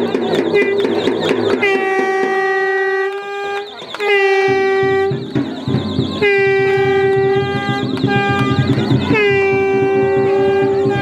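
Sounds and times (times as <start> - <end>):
horn long blast: 0.0 - 11.0
music with a beat: 0.0 - 11.0.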